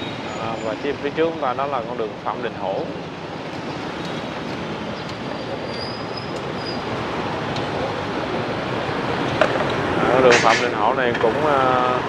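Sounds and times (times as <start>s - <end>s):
motorbike traffic: 0.0s - 12.0s
faint high squeal: 5.0s - 6.9s.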